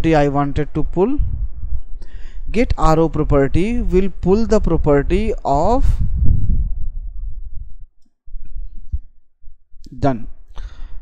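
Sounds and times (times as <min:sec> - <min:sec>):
muffled rumble on microphone: 0:00.0 - 0:09.9.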